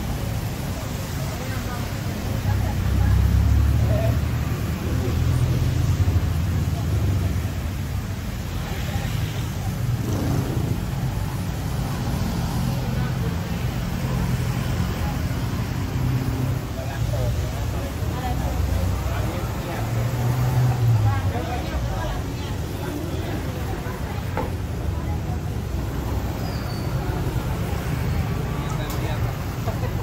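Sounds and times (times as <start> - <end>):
car and motorbike engines rumbling: 0.0 - 30.0
voices of passers-by: 0.0 - 30.0.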